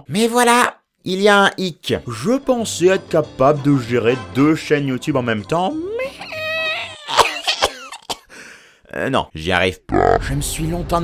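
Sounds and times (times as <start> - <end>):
man coughing: 7.0 - 8.4.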